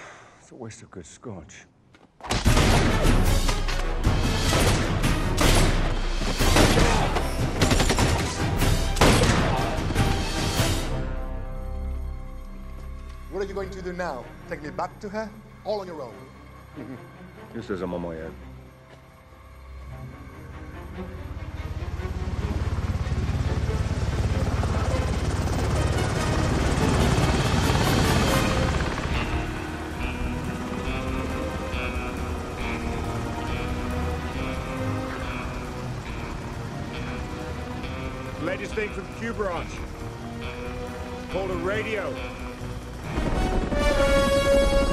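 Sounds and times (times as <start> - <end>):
film score with sustained chords: 2.3 - 44.9
helicopter rotors beating: 2.8 - 44.9
gunshots: 4.3 - 10.0.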